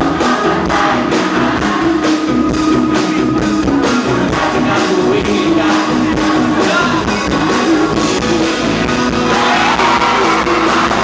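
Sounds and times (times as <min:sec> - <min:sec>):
drum kit steady beat: 0:00.0 - 0:11.0
live pop band playing: 0:00.0 - 0:11.0.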